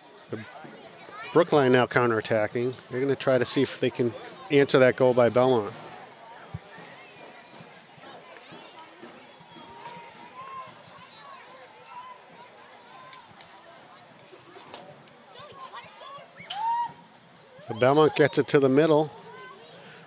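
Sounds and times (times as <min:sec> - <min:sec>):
distant players calling and shouting: 0:00.0 - 0:20.0
rising shout: 0:16.4 - 0:17.0.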